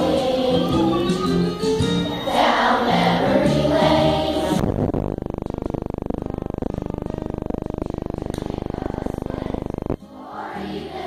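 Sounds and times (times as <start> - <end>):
harsh muffled buzz: 0.0 - 11.0.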